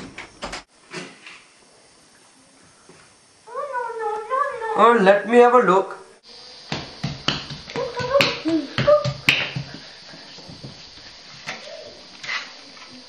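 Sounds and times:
hands slapping on tiled floor: 0:06.6 - 0:10.8.

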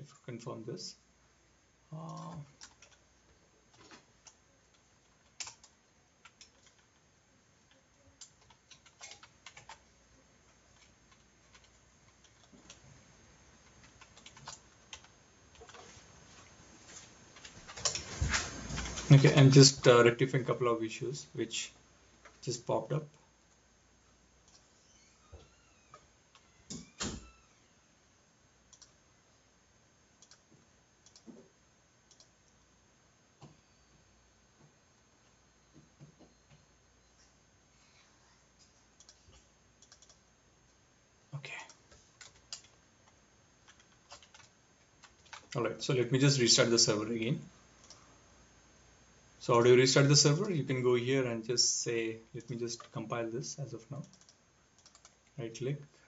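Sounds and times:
keyboard and mouse clicks: 0:02.0 - 0:03.0, 0:03.7 - 0:07.0, 0:07.7 - 0:09.8, 0:10.7 - 0:12.8, 0:13.6 - 0:15.9, 0:17.4 - 0:18.1, 0:24.4 - 0:27.5, 0:28.7 - 0:29.0, 0:30.2 - 0:30.4, 0:31.0 - 0:31.5, 0:32.1 - 0:32.3, 0:38.6 - 0:40.2, 0:41.7 - 0:45.6, 0:47.8 - 0:48.0, 0:54.0 - 0:55.3
mouse and keyboard clicks: 0:39.8 - 0:40.2.

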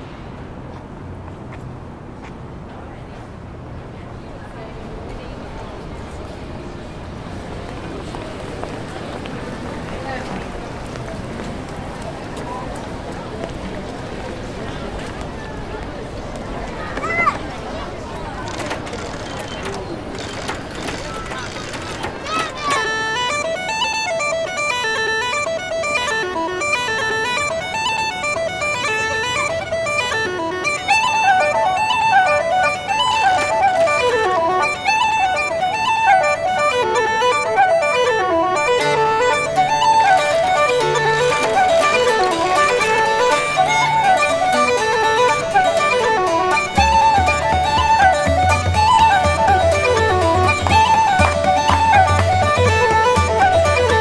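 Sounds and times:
fast traditional dance tune: 0:20.4 - 0:54.0.

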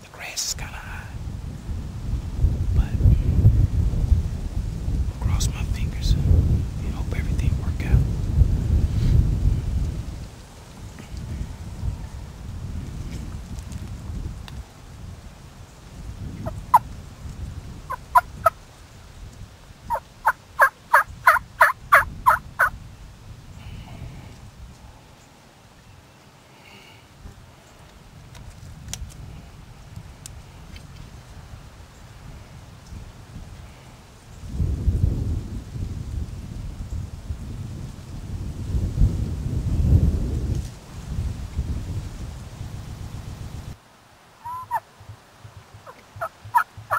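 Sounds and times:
wind rumble on microphone: 0:00.0 - 0:25.4, 0:27.2 - 0:43.8
turkey yelps: 0:19.9 - 0:22.7, 0:44.4 - 0:44.8.

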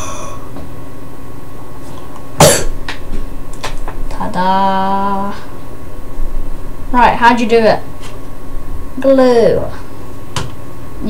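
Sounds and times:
boy coughing: 0:02.4 - 0:02.7.

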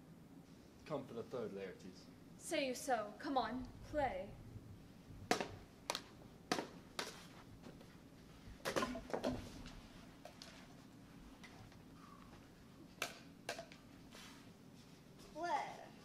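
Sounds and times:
prop swords knocking: 0:05.3 - 0:07.2, 0:08.6 - 0:09.5.

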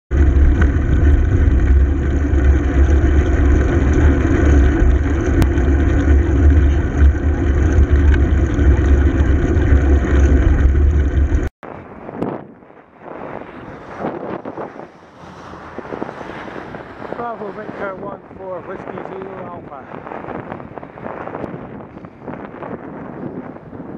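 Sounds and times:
traffic: 0:00.1 - 0:12.1, 0:12.7 - 0:22.2
road rumble: 0:00.1 - 0:23.9
wind buffeting microphone: 0:00.1 - 0:23.9.

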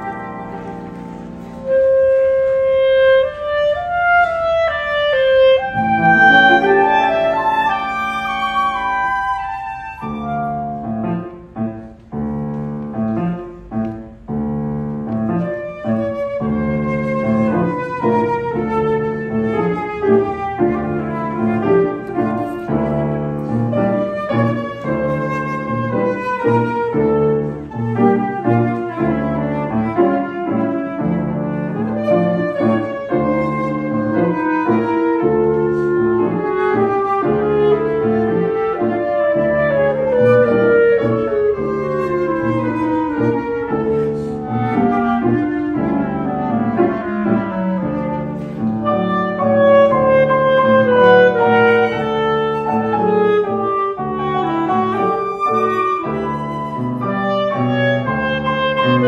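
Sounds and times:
piano accompaniment: 0:00.0 - 0:59.0
woodwind melody: 0:00.0 - 0:59.0
steady low note: 0:05.6 - 0:10.7.

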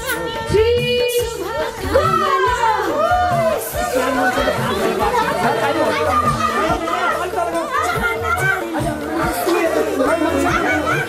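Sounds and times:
background music with low beat: 0:00.0 - 0:11.0
children chattering and calling out: 0:01.2 - 0:11.0.

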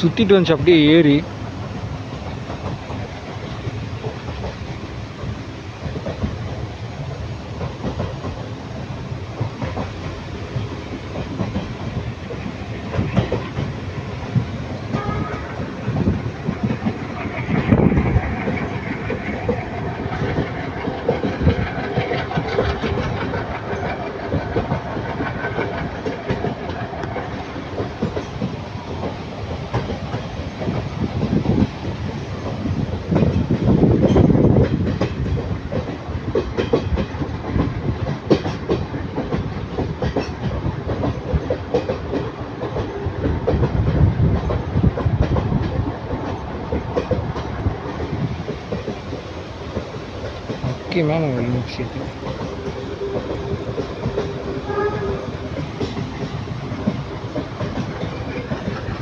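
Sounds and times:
train wheels clickety-clack on rails: 0:00.0 - 0:59.0.

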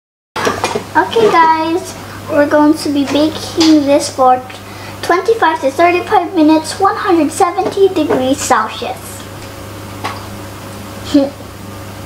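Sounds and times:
child talking: 0:01.0 - 0:09.2, 0:11.0 - 0:11.4.

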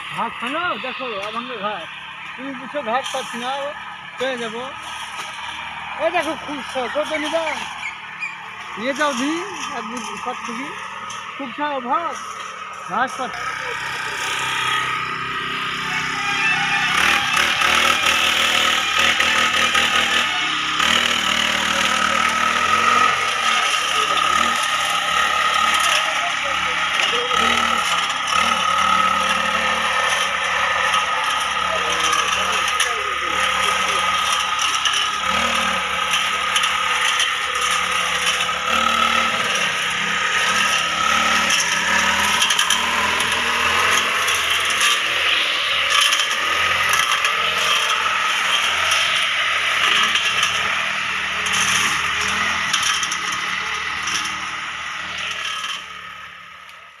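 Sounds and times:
brush cutter engine whining: 0:00.0 - 0:57.0.

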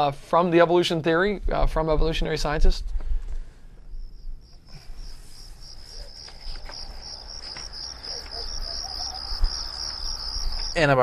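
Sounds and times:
crickets chirping: 0:03.8 - 0:11.0.

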